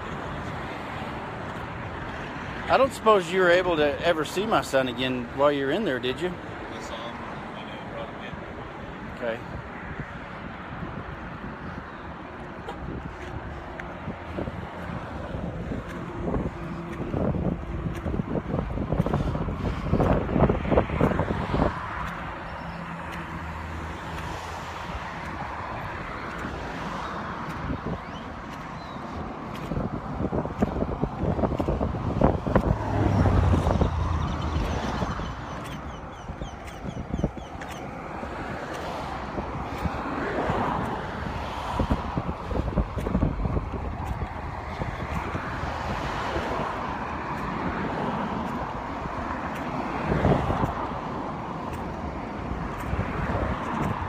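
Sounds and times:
cars passing: 0.0 - 54.0
wind on microphone: 8.3 - 54.0.

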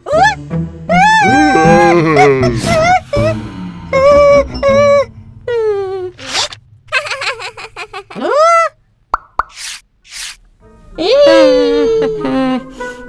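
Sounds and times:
quick pops: 9.1 - 10.4.

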